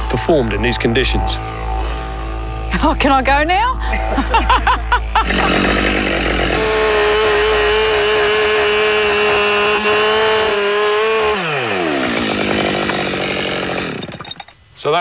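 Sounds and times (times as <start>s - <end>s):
chainsaw cutting log: 4.3s - 14.7s.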